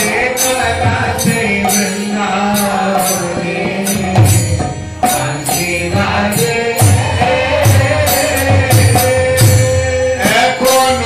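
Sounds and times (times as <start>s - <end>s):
hand cymbals struck: 0.0s - 11.0s
voices chanting held notes: 0.0s - 11.0s.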